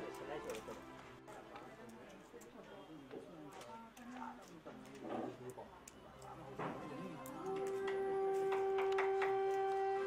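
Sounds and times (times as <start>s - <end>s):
flute-like held note: 7.4s - 10.0s.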